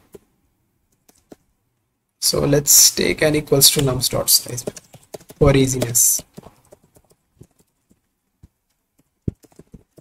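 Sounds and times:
computer keyboard keystrokes: 0.9s - 1.4s, 3.8s - 8.0s, 8.7s - 10.0s.

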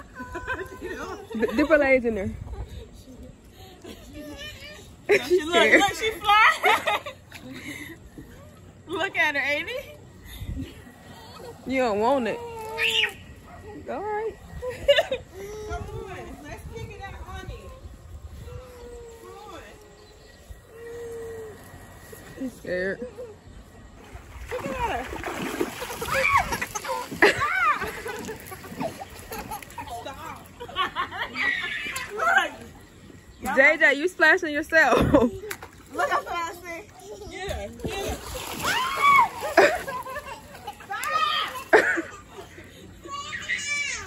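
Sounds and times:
pool water splashing: 3.7s - 10.2s, 10.8s - 18.1s, 18.7s - 44.0s.

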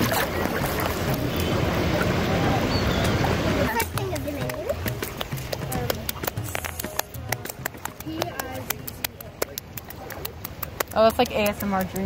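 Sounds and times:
hands slapping wet sand: 3.7s - 12.0s.

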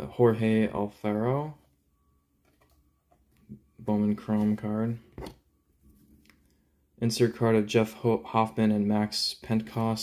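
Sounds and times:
man speaking: 0.0s - 1.7s, 3.8s - 5.1s, 7.0s - 10.0s.

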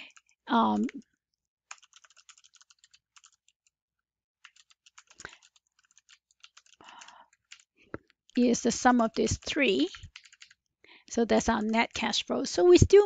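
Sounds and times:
typing on computer keyboard: 1.7s - 3.8s, 4.4s - 10.6s, 11.4s - 12.2s.

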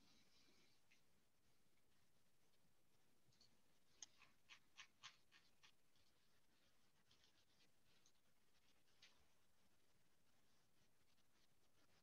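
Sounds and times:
faint soft clicks: 3.3s - 5.8s.

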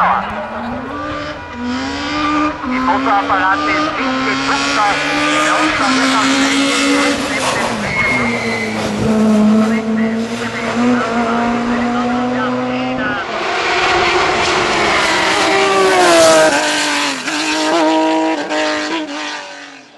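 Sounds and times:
race car engines at full throttle: 0.0s - 19.9s.

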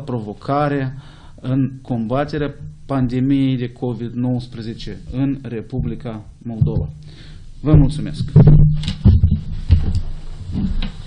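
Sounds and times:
chair pushed back thumps: 7.8s - 11.0s.

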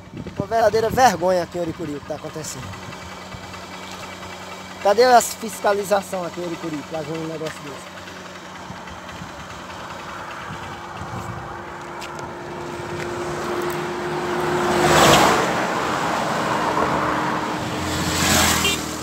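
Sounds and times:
low engine hum: 0.0s - 19.0s
vehicles passing on highway: 0.0s - 19.0s.

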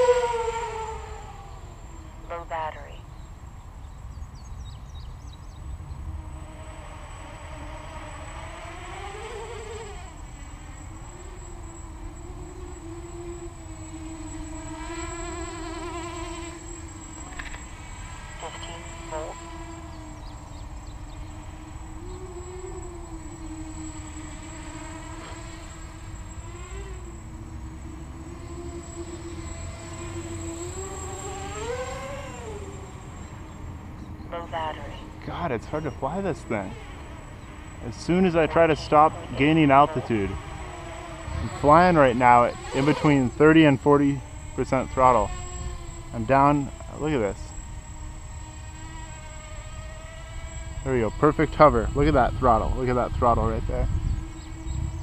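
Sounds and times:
quadcopter propellers buzzing: 0.0s - 55.0s.

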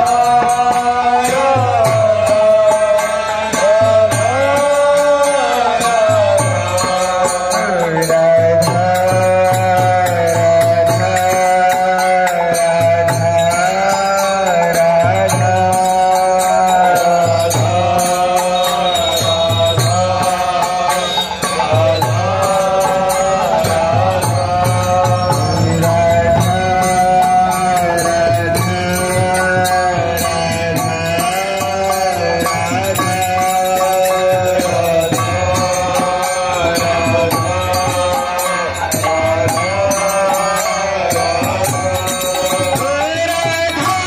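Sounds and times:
mantra chanting: 0.0s - 44.0s
steady percussive beat: 0.0s - 44.0s.

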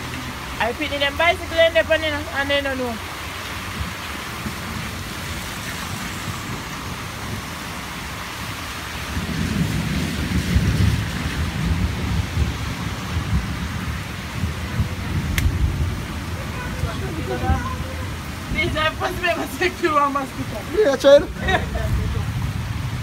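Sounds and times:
rain falling on foliage: 0.0s - 23.0s
low rumbling: 9.0s - 23.0s.

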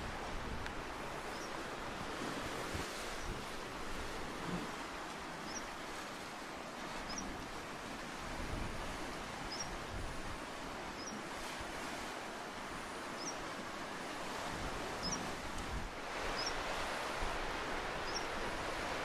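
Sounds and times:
sea surf washing into rocks: 0.0s - 19.0s.

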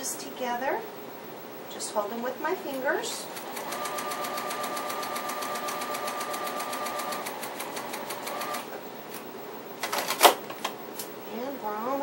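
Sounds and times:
sewing machine stitching: 3.3s - 8.7s.

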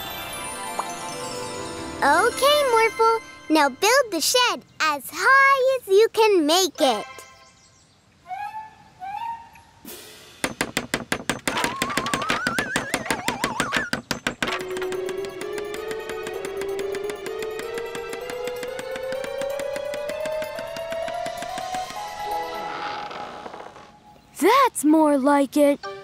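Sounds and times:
background music: 0.0s - 4.6s, 14.5s - 24.3s, 25.8s - 26.0s
wavering whistle rising: 8.3s - 9.8s
rapid clicks: 11.6s - 22.6s.

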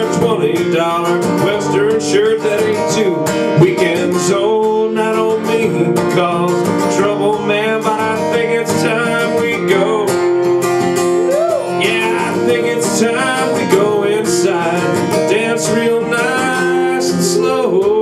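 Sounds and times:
lead guitar picking melody: 0.0s - 18.0s
strummed guitar chords: 0.0s - 18.0s.

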